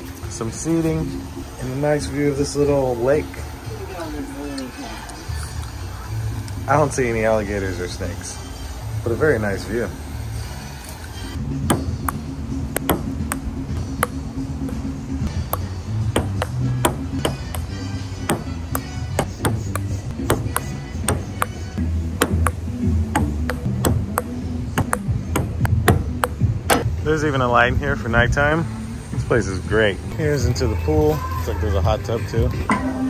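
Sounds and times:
background music with low notes: 0.0 - 33.0.

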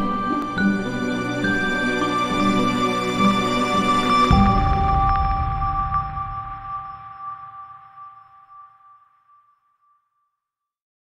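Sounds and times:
ringing high tones: 0.0 - 10.1
low rumble: 4.3 - 8.0.

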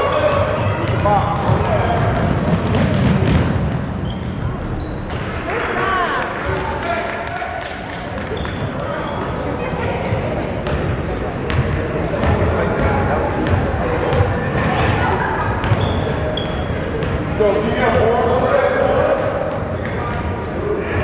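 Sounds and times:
sneakers squeaking: 0.0 - 5.6, 8.0 - 18.4, 19.2 - 21.0.

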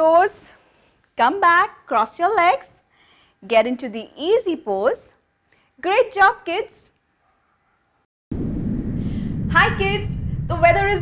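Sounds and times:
airplane engine low rumble: 8.4 - 11.0.

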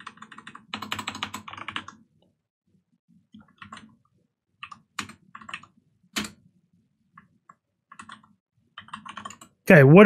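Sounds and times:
keyboard typing: 0.0 - 2.1, 3.3 - 4.0, 4.6 - 6.4, 7.1 - 9.6.

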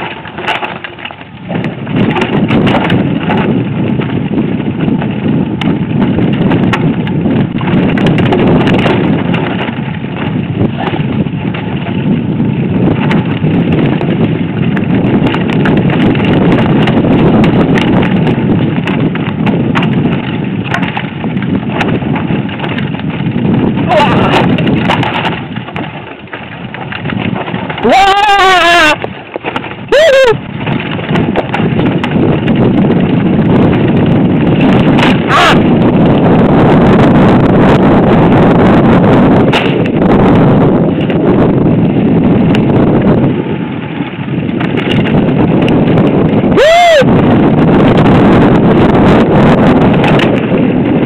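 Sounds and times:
bike rattling and knocking: 0.0 - 51.0
wind buffeting and tyre noise: 0.0 - 51.0.

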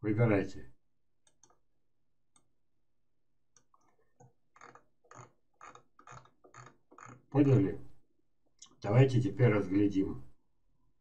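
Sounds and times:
computer mouse clicks: 1.2 - 1.6, 3.6 - 7.2.

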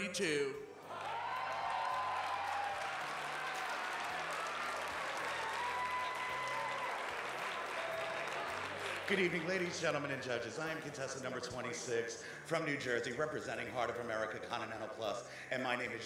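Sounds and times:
audience cheering: 0.8 - 9.8
audience applause: 0.9 - 10.2.

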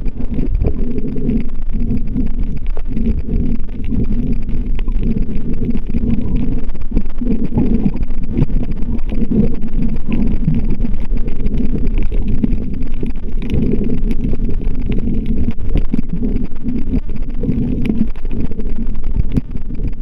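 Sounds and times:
faint clicks: 0.0 - 20.0
muffled underwater rumble: 0.0 - 20.0.

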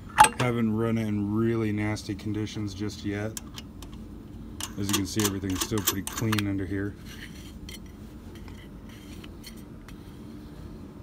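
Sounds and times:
low steady hum: 0.0 - 11.0
wing nut scraping on metal: 4.6 - 9.7.

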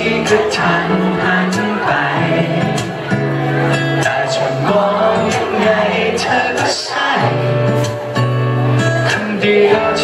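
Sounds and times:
man singing into microphone: 0.0 - 10.0
musical accompaniment: 0.0 - 10.0.

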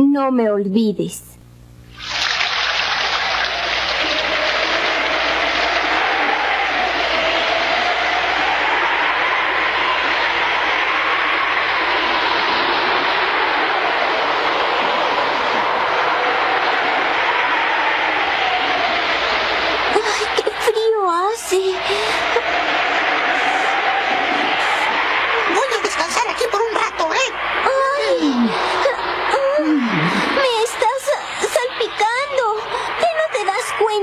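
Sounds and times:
heavy rain hissing: 1.9 - 33.9
wind howling: 3.1 - 33.9.

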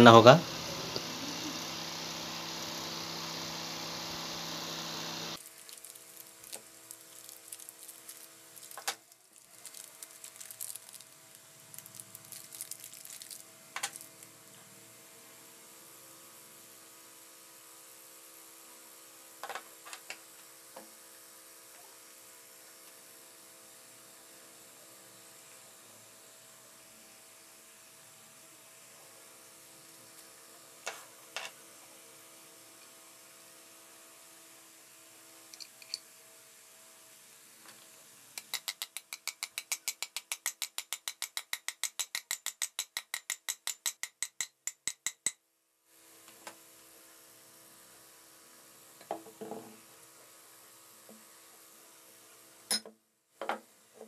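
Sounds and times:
faint steady hum and hiss: 0.0 - 41.6, 45.4 - 54.0
hammer tapping metal: 38.4 - 45.4.

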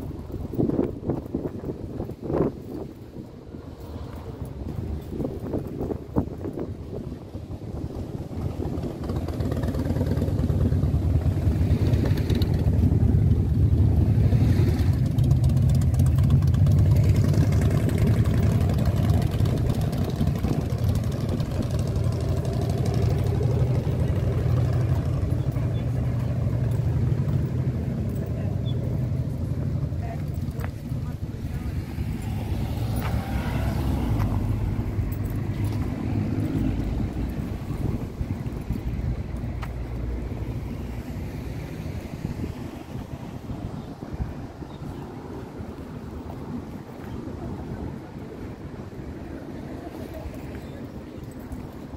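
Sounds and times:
road traffic: 0.0 - 51.9
wind rumbling on microphone: 0.0 - 51.9.

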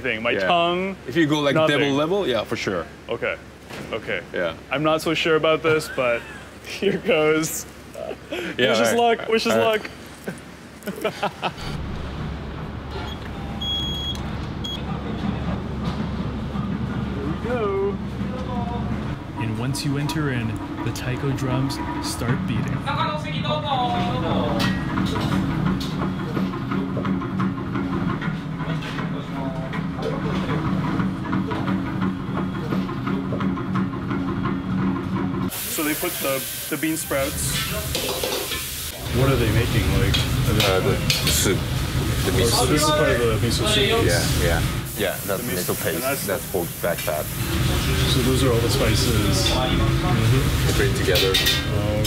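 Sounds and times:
steady low hum: 9.9 - 35.5
low rumble: 11.5 - 13.7
vending machine beeps: 12.9 - 14.9
food frying in a wok: 35.5 - 52.0.

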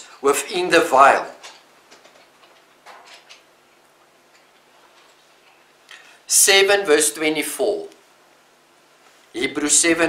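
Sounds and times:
low hiss: 0.0 - 10.0.

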